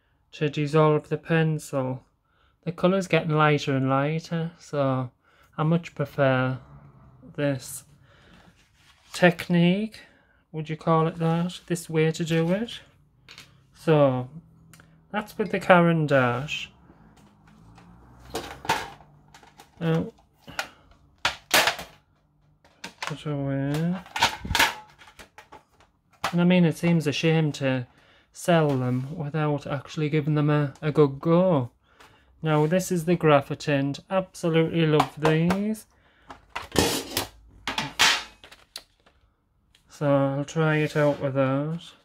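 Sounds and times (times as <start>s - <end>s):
metal tin clacking and knocking: 22.7s - 25.6s, 36.3s - 38.5s.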